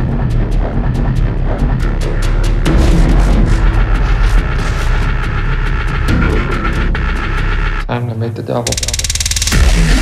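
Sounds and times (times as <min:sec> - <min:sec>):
deep sub-bass: 0:00.0 - 0:07.9
quick percussion hits: 0:08.7 - 0:10.0.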